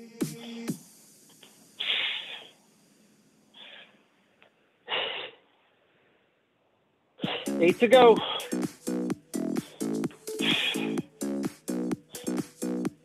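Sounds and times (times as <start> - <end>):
electronic workout music: 0.0 - 2.4, 7.2 - 13.0
person breathing out heavily: 1.8 - 2.6, 7.2 - 11.3, 12.1 - 12.8.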